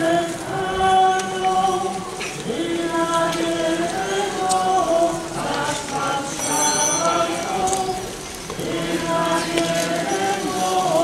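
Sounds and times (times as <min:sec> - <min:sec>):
crowd singing a hymn: 0:00.0 - 0:11.0.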